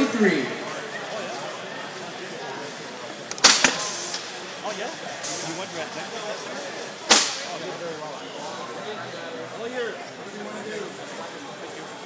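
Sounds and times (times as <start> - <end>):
crowd chatter: 0.0 - 12.0
sharp loud snap: 3.3 - 4.2, 7.1 - 7.5.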